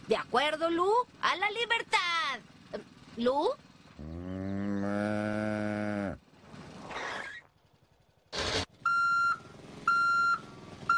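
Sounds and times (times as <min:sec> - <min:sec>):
low engine rumble: 0:00.0 - 0:10.9
backup alarm beeping: 0:08.8 - 0:10.9.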